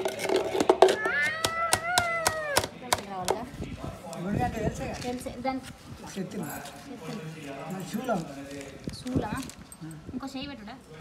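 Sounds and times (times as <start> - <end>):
toddler crying high-pitched: 1.0 - 2.6.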